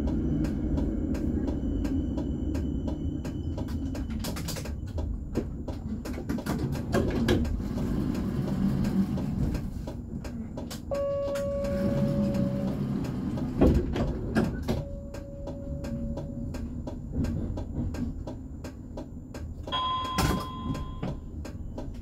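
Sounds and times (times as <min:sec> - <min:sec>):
tram humming: 0:00.0 - 0:22.0.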